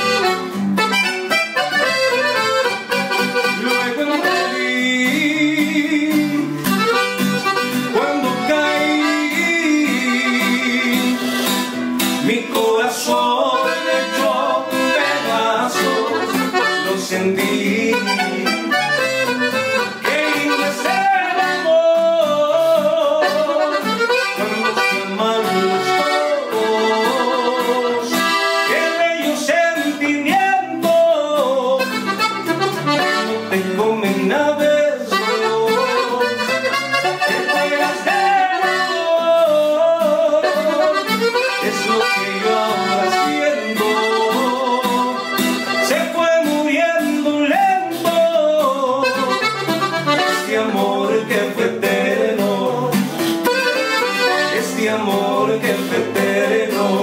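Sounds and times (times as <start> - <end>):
button accordion: 0.0 - 46.4, 47.9 - 57.0
strummed acoustic guitar: 0.0 - 57.0
singer with harmony voices: 3.7 - 6.6, 8.0 - 11.4, 12.2 - 19.0, 19.9 - 23.8, 24.4 - 31.9, 33.4 - 49.1, 50.1 - 53.2, 54.2 - 57.0.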